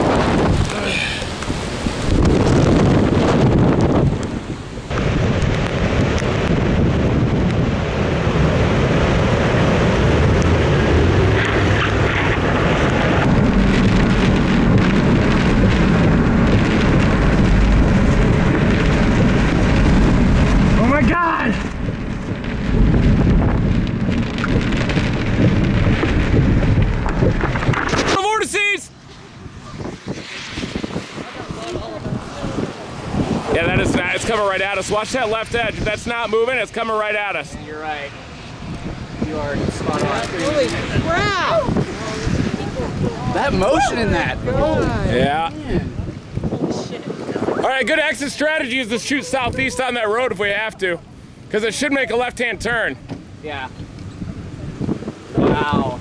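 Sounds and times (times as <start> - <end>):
heavy rain on vehicle: 0.0 - 28.7, 29.8 - 56.0
wind buffeting microphone: 0.0 - 56.0
man talking: 20.8 - 21.7, 28.0 - 28.9, 33.5 - 38.2, 43.3 - 46.0, 47.4 - 53.8.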